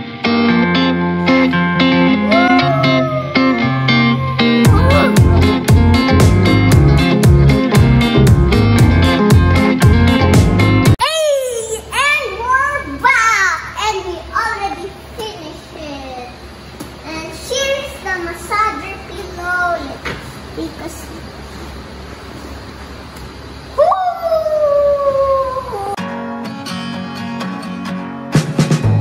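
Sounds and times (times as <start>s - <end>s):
child making gliding vocal sounds: 2.2s - 5.5s, 23.8s - 26.0s
long high cry: 2.2s - 5.5s, 23.8s - 26.0s.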